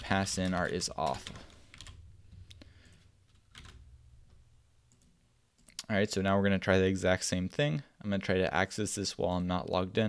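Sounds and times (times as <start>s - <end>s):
computer keyboard keystrokes: 2.8s - 3.8s.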